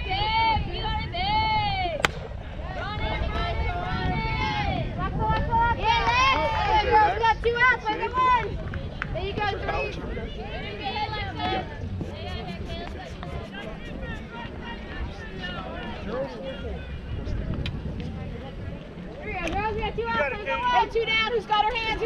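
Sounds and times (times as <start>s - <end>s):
softball bat hitting ball: 2.0s - 2.4s.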